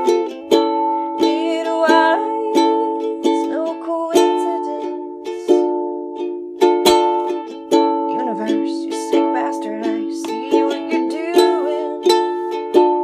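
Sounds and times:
ukulele strumming: 0.0s - 13.0s.

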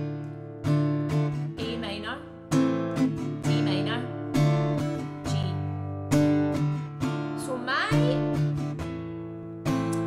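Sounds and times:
acoustic guitar strummed: 0.0s - 10.0s.

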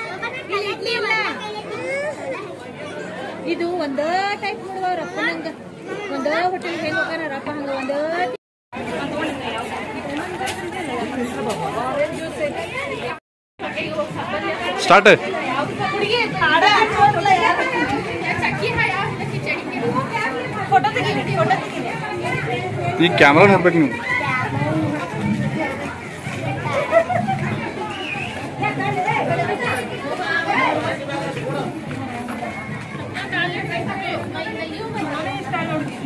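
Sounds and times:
women chattering: 0.0s - 36.0s.

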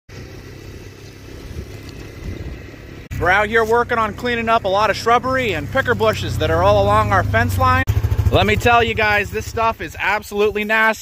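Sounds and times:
atv engine rumbling: 0.1s - 11.0s.

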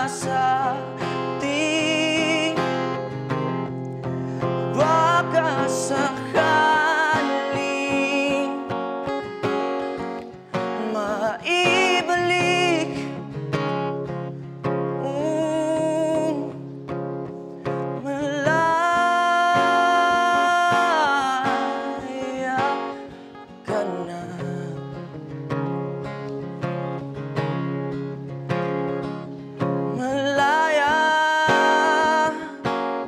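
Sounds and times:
acoustic guitar: 0.0s - 33.0s
person singing slow phrases: 4.6s - 8.7s, 18.0s - 23.0s.

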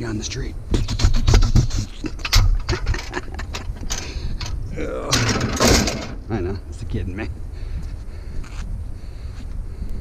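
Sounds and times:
metal rails clanking and scraping: 1.3s - 6.4s.

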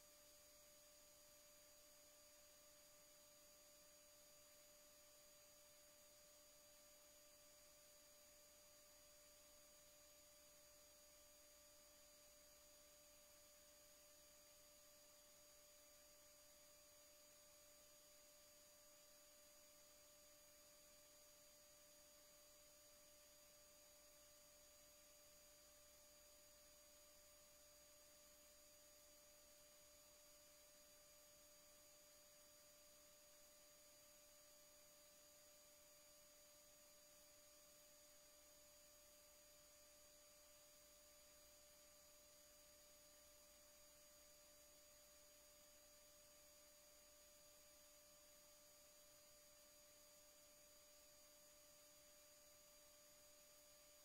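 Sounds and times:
faint electrical hum: 0.0s - 54.0s.

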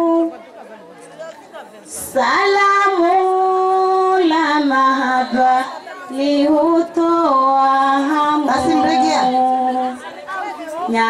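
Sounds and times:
faint chatter: 0.0s - 11.0s
woman singing long notes: 2.0s - 10.0s.

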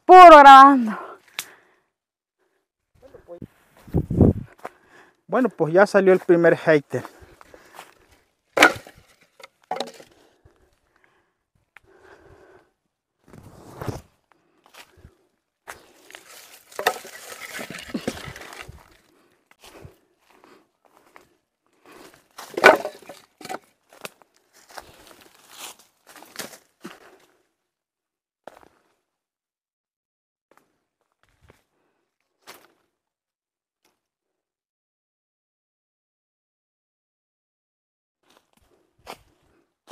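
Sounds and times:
wood cracking and knocking: 8.6s - 10.1s, 16.3s - 18.8s, 22.5s - 23.6s
footsteps through dry brush: 13.5s - 27.4s, 32.4s - 32.9s, 38.2s - 39.9s.

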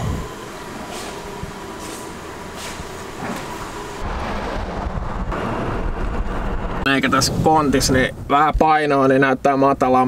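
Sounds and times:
vehicle engine running: 0.0s - 6.8s
road rumble: 0.0s - 8.6s.

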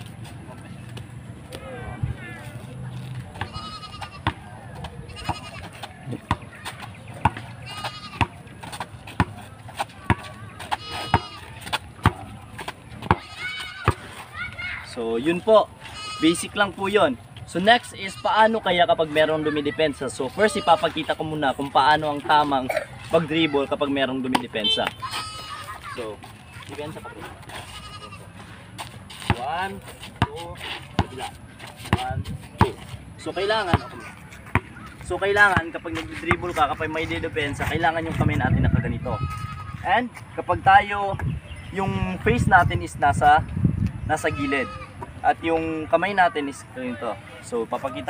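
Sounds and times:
basketball bouncing on concrete: 4.2s - 7.5s, 8.1s - 14.0s, 30.2s - 32.9s, 33.6s - 36.6s.

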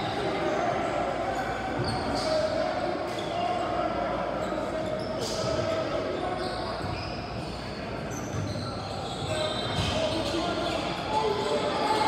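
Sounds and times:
voices echoing in a hall: 0.0s - 12.0s.

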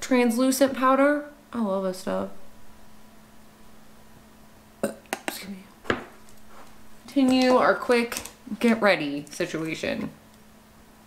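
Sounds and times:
faint steady hum: 0.0s - 11.0s
woman hiccuping: 4.8s - 5.5s.

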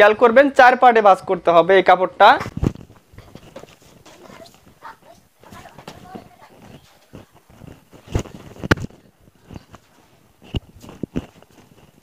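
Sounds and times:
fabric rustling and flapping: 2.4s - 12.0s.

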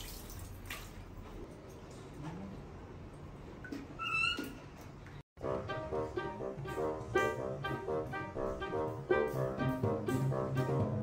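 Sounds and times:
background music: 5.4s - 11.0s.

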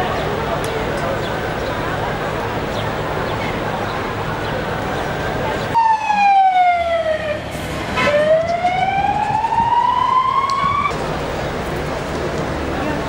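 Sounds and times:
emergency vehicle siren wailing: 5.7s - 10.9s.

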